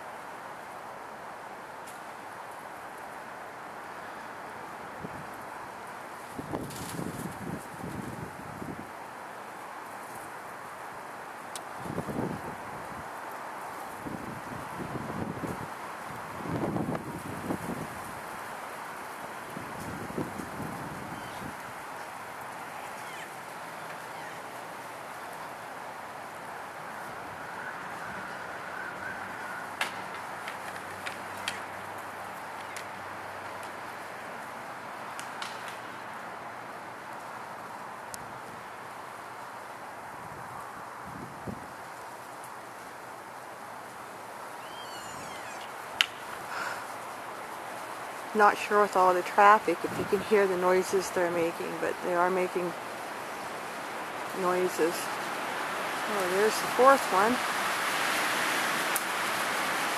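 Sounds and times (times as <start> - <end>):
road traffic noise: 0.0 - 59.9
wind buffeting microphone: 6.2 - 9.0, 11.6 - 13.2, 13.8 - 23.6, 40.0 - 42.0, 47.7 - 52.7.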